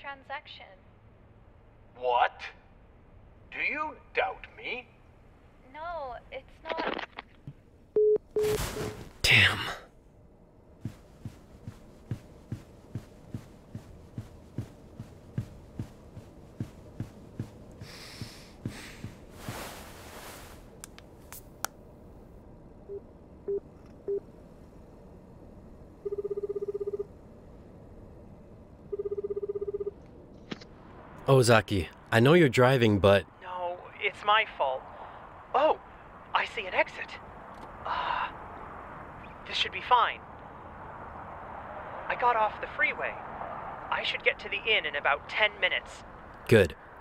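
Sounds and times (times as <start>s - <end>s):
telephone busy tone beeps: 8.0s - 8.9s, 26.0s - 27.1s, 28.9s - 30.0s.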